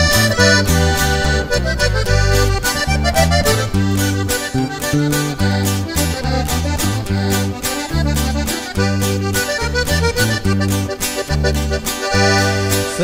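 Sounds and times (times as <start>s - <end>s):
button accordion melody: 0.0s - 13.0s
guitar: 0.0s - 13.0s
walking bass line: 0.0s - 13.0s.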